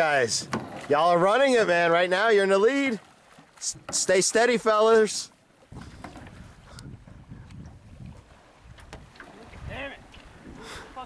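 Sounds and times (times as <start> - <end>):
wind buffeting microphone: 5.7 - 11.0.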